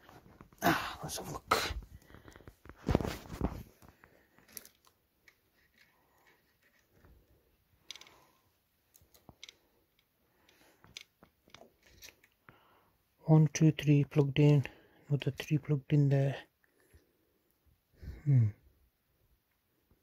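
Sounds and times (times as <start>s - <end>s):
cables rustling: 0.0s - 12.6s.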